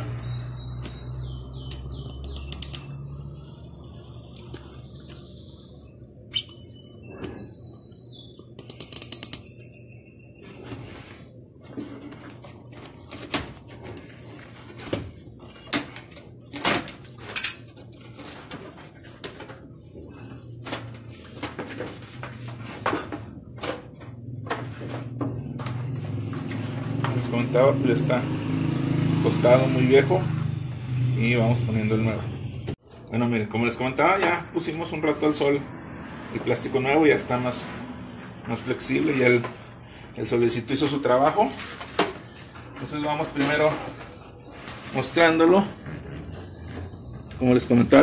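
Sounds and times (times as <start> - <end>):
rubber squeaking: 45.2 - 48.0.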